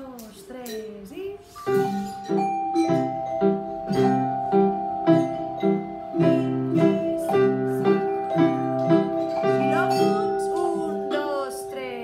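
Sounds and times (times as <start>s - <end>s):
metallophones struck with mallets: 0.6s - 12.0s.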